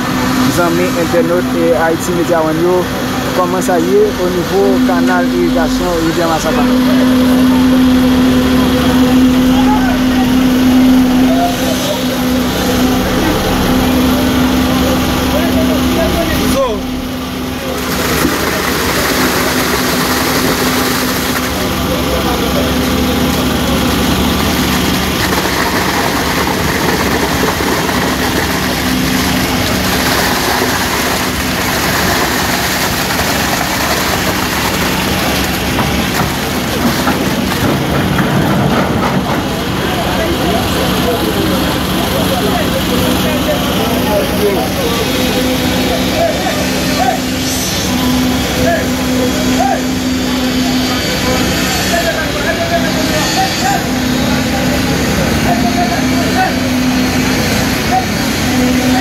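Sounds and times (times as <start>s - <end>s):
crowd talking: 0.0s - 59.0s
diesel construction machinery running: 0.0s - 59.0s.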